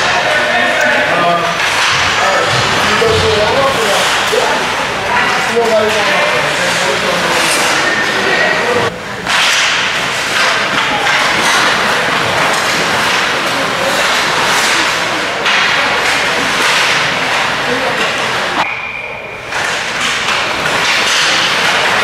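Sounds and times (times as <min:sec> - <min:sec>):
hockey sticks knocking puck: 0:01.4 - 0:08.1, 0:09.2 - 0:18.3, 0:19.5 - 0:22.0
skates scraping ice: 0:05.3 - 0:08.2, 0:09.3 - 0:18.4.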